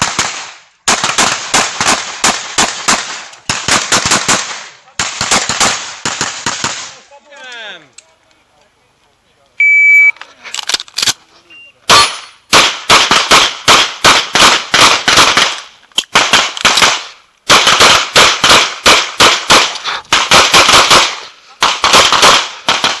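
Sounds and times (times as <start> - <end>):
pistol shots: 0.0 - 7.0, 11.9 - 23.0
electronic timer beep: 9.6 - 10.2.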